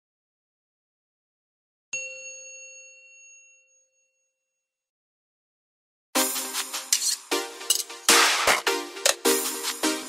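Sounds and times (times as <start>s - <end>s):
bright bell-like chime: 2.0s - 4.9s.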